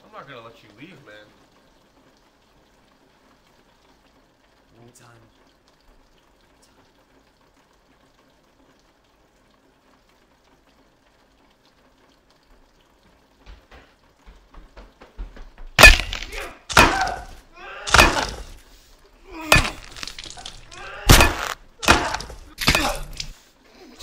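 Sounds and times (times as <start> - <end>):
loud thuds and crashes: 15.8 - 18.6, 19.4 - 23.4.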